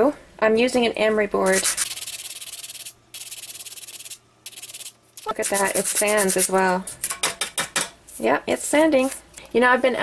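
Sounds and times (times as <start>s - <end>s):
emery board sanding clay: 1.4s - 6.8s.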